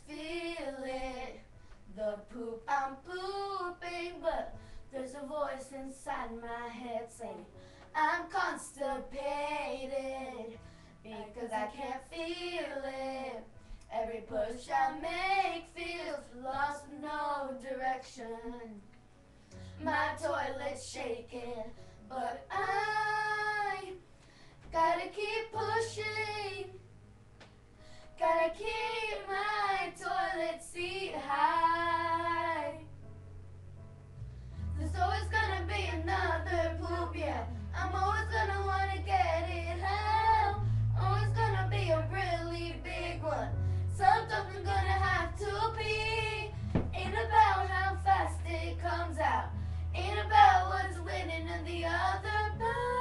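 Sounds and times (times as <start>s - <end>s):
child singing: 0.0s - 18.8s, 19.8s - 24.0s, 24.7s - 26.8s, 28.2s - 32.9s, 34.8s - 53.0s
steady low hum: 0.0s - 53.0s.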